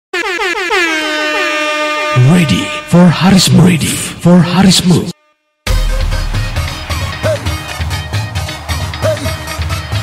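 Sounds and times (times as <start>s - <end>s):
air horn blasts: 0.1s - 4.0s
music track: 5.7s - 10.0s.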